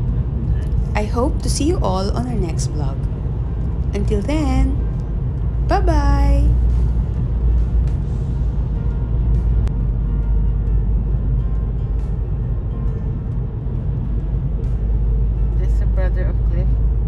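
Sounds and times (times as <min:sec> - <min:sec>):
car road rumble from inside: 0:00.0 - 0:17.0.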